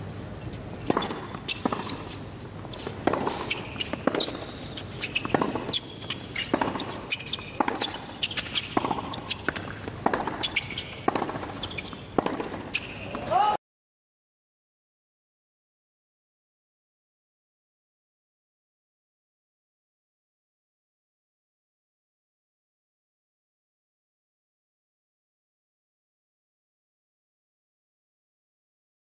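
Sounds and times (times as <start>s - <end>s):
tennis ball bouncing: 0.4s - 13.4s
racket striking tennis ball: 0.5s - 13.5s.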